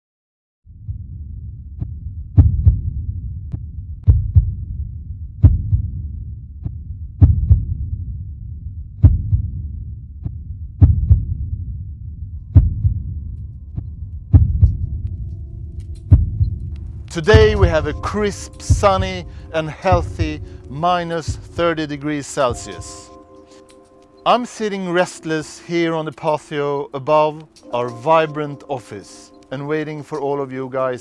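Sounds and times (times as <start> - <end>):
heartbeat-like thumping: 0.8 - 21.9.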